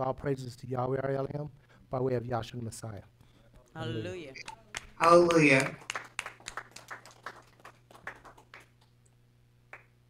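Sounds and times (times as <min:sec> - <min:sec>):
people clapping: 0:03.6 - 0:10.0.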